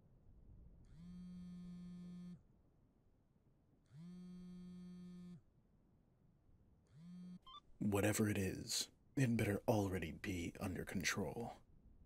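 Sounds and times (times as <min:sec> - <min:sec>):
phone buzzing on vibrate: 0:00.9 - 0:02.4, 0:03.9 - 0:05.4, 0:06.9 - 0:07.6.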